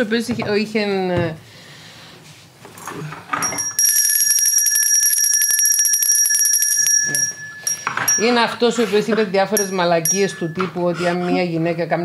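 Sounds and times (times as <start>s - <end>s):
handbell rung rapidly: 3.4s - 8.8s, 9.6s - 11.0s.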